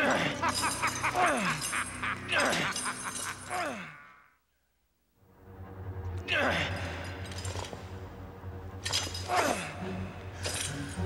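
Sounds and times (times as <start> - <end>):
chains rattling and clanking: 0.0 - 3.8, 6.7 - 8.0, 8.7 - 9.8, 10.4 - 11.0
low background music: 0.0 - 4.0, 5.1 - 11.0
man grunting: 1.1 - 4.3.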